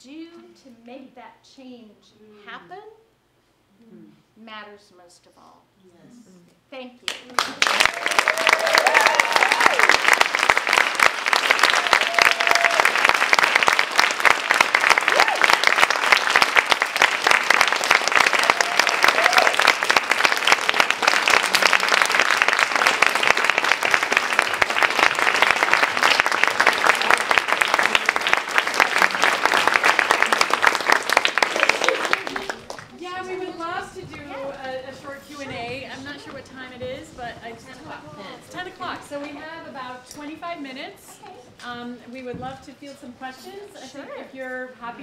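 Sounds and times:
audience applauding: 0:07.1 - 0:33.0.

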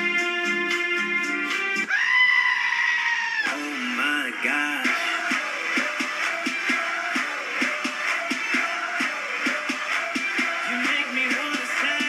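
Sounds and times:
music from television speaker: 0:00.0 - 0:02.0, 0:03.4 - 0:12.0
goat screaming: 0:01.9 - 0:03.6.

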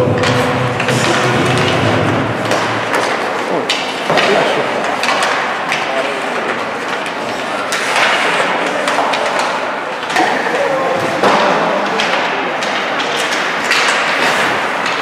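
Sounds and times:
skates scraping on ice: 0:00.0 - 0:15.0
knocks against hockey boards: 0:00.1 - 0:10.4, 0:11.0 - 0:15.0.

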